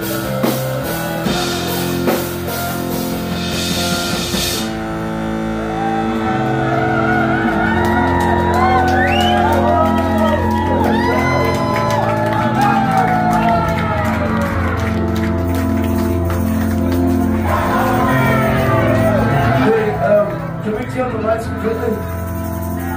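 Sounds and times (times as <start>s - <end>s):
band playing sustained chords: 0.0s - 22.9s
people shouting and whooping: 5.6s - 15.3s, 17.2s - 20.6s.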